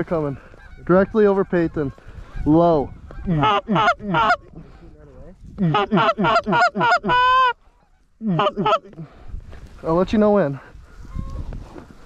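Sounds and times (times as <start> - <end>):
goose honking: 0.3 - 4.4, 5.6 - 9.0.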